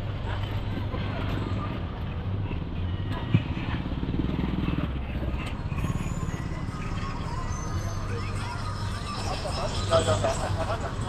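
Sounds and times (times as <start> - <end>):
murmur of crowd voices: 0.0 - 11.0
small engine running: 0.0 - 11.0.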